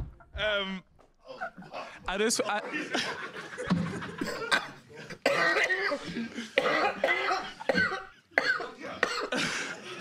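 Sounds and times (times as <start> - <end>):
man coughing: 4.2 - 10.0.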